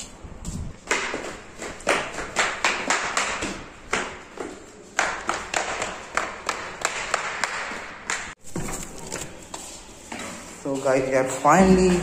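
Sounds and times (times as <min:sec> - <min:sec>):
slippers slapping on stairs: 0:00.4 - 0:09.9, 0:11.6 - 0:12.0.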